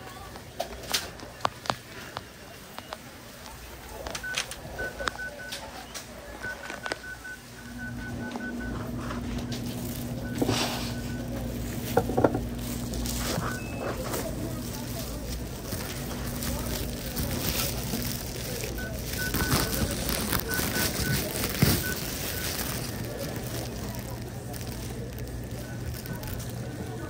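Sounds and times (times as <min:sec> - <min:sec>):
steady low hum: 0:03.1 - 0:27.0.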